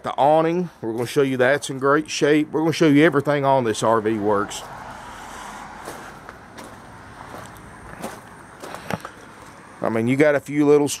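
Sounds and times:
distant road traffic hiss: 0.0s - 11.0s
soft footsteps: 5.7s - 9.7s.

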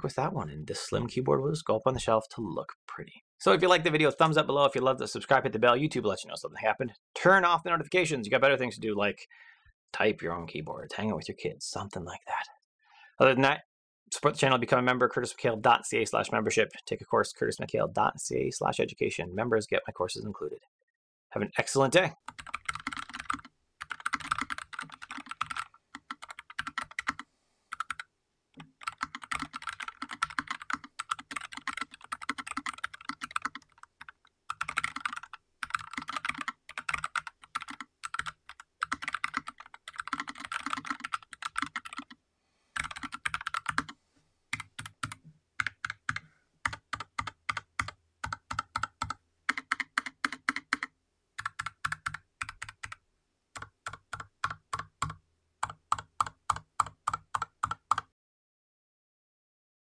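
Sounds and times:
mechanical keyboard typing: 22.3s - 28.0s, 28.6s - 42.2s, 42.8s - 43.9s, 44.6s - 53.0s, 53.6s - 58.1s.

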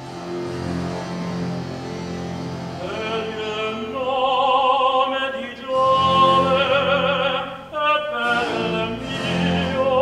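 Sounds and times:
orchestra holding low notes: 0.0s - 10.0s.

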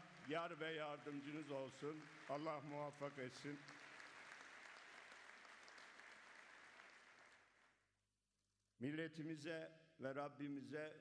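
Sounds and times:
audience applauding: 0.0s - 7.7s.

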